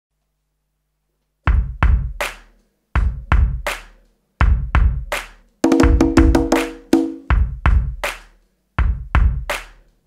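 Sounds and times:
hand drum hits: 5.6s - 7.4s.

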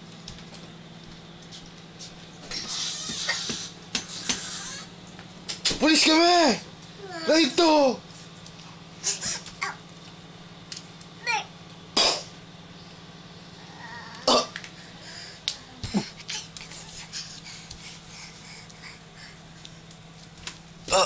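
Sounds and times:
steady low hum: 0.0s - 21.0s
toddler coughing: 12.0s - 12.3s, 14.2s - 14.6s
toddler vocal noises: 13.6s - 14.3s.

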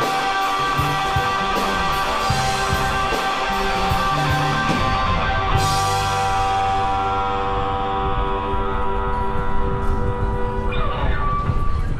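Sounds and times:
electric guitar sustained chord: 0.0s - 11.9s.

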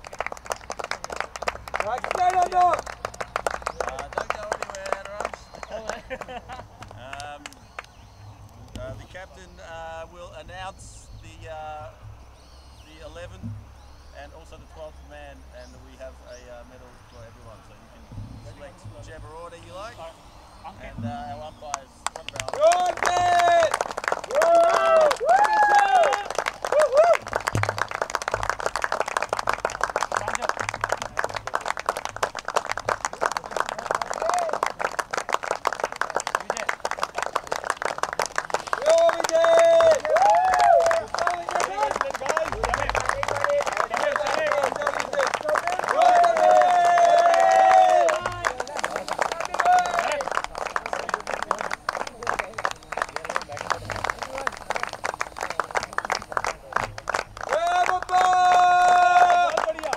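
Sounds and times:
small group clapping: 0.0s - 8.9s, 21.0s - 59.9s
voices calling out and talking: 1.7s - 27.4s, 29.4s - 59.9s.

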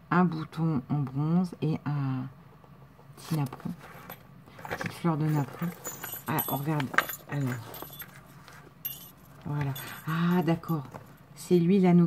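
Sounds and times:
metal ring clinking: 4.0s - 11.2s.

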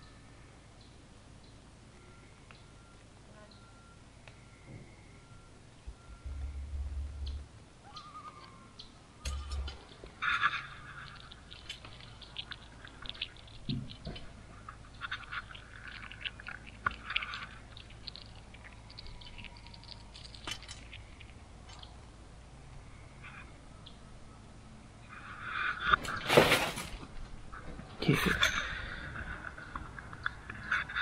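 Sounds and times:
chipmunk crunching seeds: 9.6s - 22.2s.

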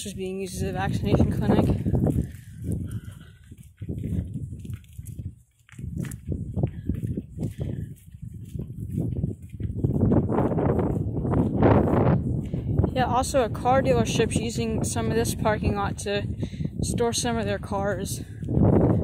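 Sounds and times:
footsteps on concrete: 0.0s - 15.9s.

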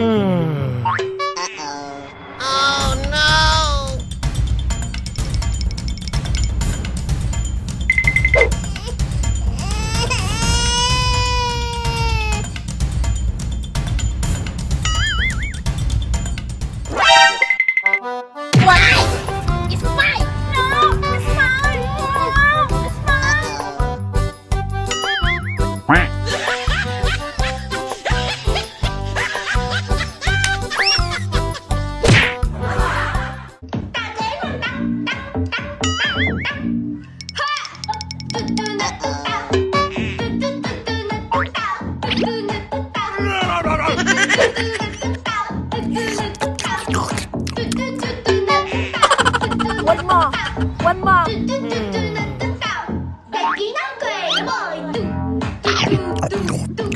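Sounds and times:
rapid beeping: 7.9s - 8.6s
slap on forehead: 32.0s - 32.4s.

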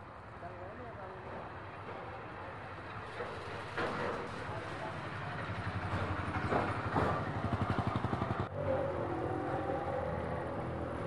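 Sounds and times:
street traffic: 0.0s - 11.0s
auto-rickshaw engine putting: 2.6s - 11.0s
motorcycle passing: 4.9s - 11.0s.

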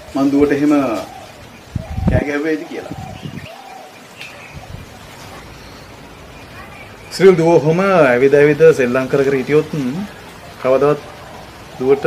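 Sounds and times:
bird low arching call: 0.0s - 7.6s.

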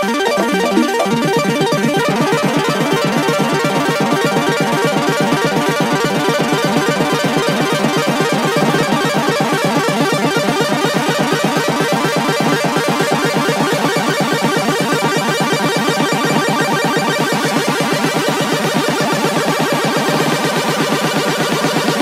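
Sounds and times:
minimal techno synth pulse: 0.0s - 22.0s.

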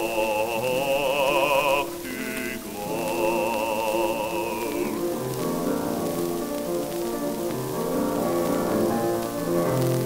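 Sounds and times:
gramophone record hiss and crackle: 0.0s - 10.0s
grand piano playing: 0.0s - 10.0s.

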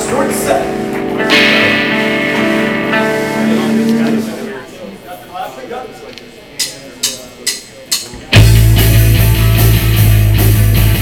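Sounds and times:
electric guitar chord ringing: 0.0s - 4.7s.

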